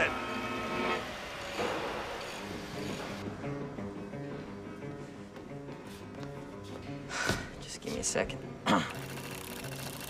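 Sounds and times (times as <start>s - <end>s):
noisy background: 0.0s - 10.0s.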